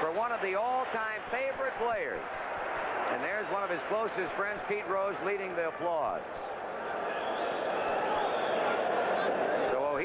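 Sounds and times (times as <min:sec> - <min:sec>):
crowd applause: 0:06.8 - 0:10.0.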